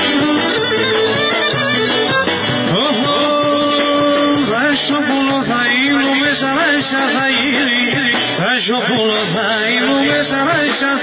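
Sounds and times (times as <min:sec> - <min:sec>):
bowed lyra folk dance tune: 0:00.0 - 0:09.0
percussion: 0:00.0 - 0:11.0.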